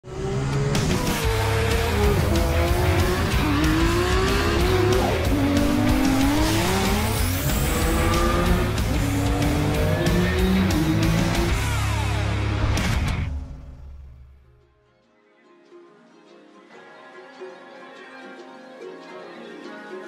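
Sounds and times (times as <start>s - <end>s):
car engine revving: 0.0s - 14.2s
loud rock music: 0.2s - 14.3s.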